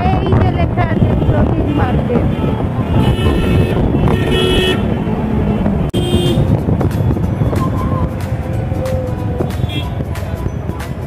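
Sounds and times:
traffic engines rumbling: 0.0s - 11.0s
vehicle horns tooting: 0.8s - 6.6s, 9.4s - 10.1s.

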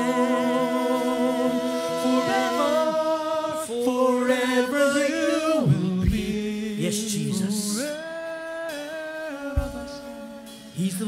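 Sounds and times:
male voices singing sustained note: 0.0s - 11.0s.

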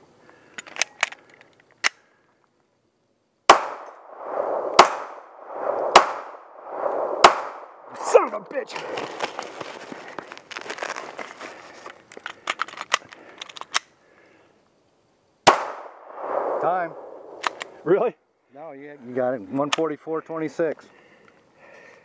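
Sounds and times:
pistol magazine clicking and rattling: 0.5s - 2.0s, 12.1s - 13.9s
pistol shots: 3.5s - 6.5s, 7.2s - 7.9s, 15.5s - 17.6s.

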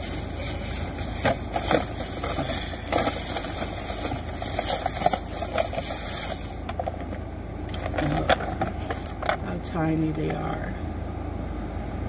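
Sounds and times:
plastic tub of apples rustling: 0.0s - 9.4s
car engine idling: 0.0s - 11.9s.

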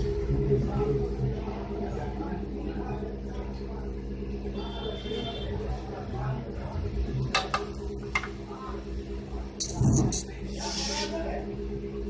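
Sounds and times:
steady low hum: 0.0s - 12.0s
faint indistinct voice: 8.3s - 12.0s.

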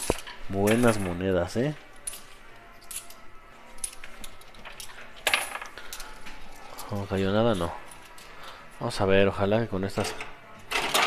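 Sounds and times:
coins clinking and clattering: 0.0s - 1.3s, 2.0s - 8.6s, 10.0s - 11.0s.

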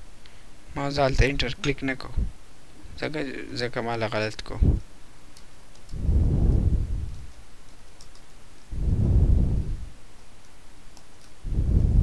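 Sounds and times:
wind gusts on microphone: 4.6s - 4.8s, 5.9s - 7.3s, 8.7s - 9.9s, 11.4s - 12.0s.

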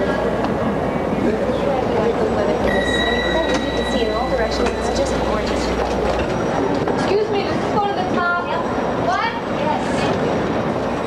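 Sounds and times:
many voices chattering: 0.0s - 11.0s
low hum: 2.6s - 7.0s
steady high tone: 2.6s - 7.1s.

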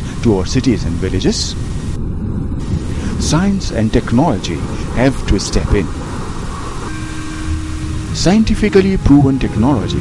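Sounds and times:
low rumbling drone: 0.0s - 10.0s
held steady tone: 6.5s - 10.0s.

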